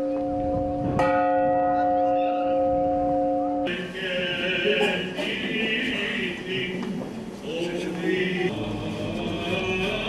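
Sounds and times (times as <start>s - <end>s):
church bell tolling: 0.0s - 3.8s.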